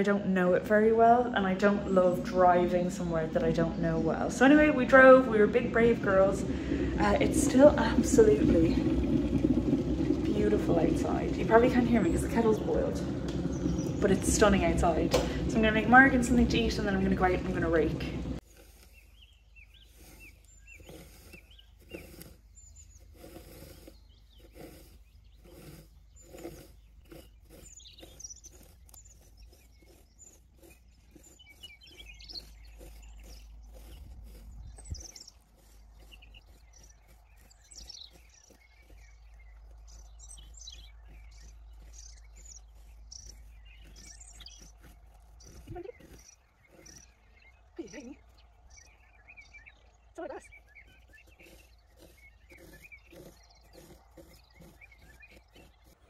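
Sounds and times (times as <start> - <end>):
birds chirping: 0.0 - 56.0
rake scratching through grass: 0.0 - 56.0
wind on microphone: 1.2 - 18.4, 31.2 - 36.6.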